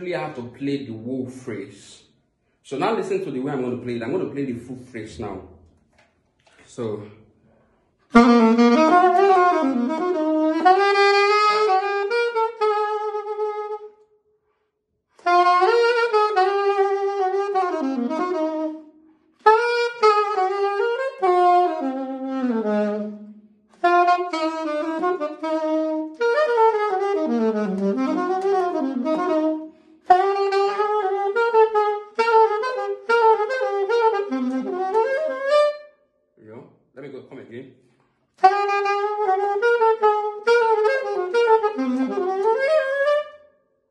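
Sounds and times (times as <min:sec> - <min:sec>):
saxophone playing jazz: 0:08.0 - 0:14.1, 0:15.1 - 0:36.0, 0:38.3 - 0:43.5.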